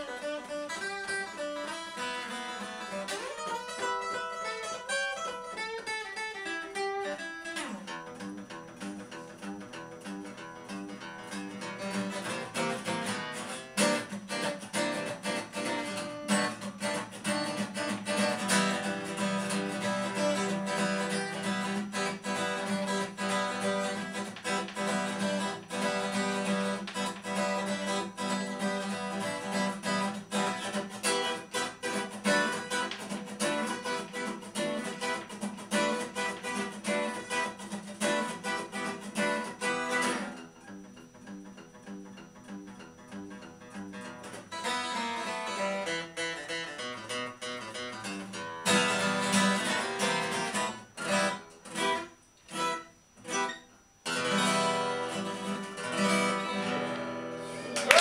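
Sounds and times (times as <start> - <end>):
acoustic guitar picking and strumming: 0.0 - 57.9.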